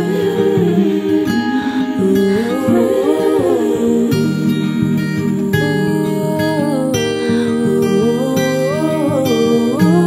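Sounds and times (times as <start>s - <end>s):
acoustic guitar playing: 0.0s - 10.0s
person humming melody: 0.0s - 10.0s.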